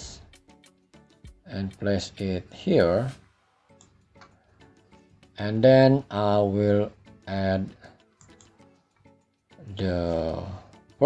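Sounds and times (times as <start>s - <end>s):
computer mouse clicks: 3.8s - 4.4s, 8.2s - 8.6s.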